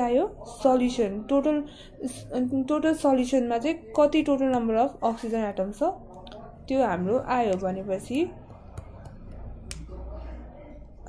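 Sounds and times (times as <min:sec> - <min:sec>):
stylus tapping surface: 0:08.4 - 0:09.9.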